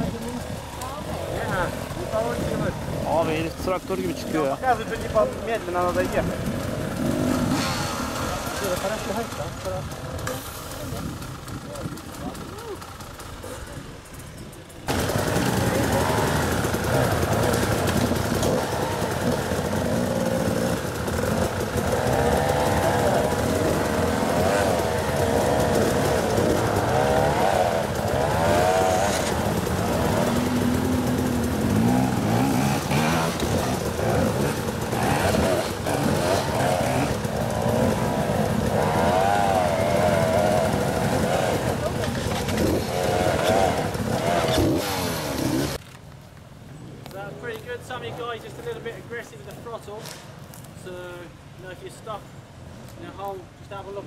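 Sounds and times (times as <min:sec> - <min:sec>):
dirt bike engine revving: 0:00.0 - 0:14.2, 0:14.8 - 0:45.8.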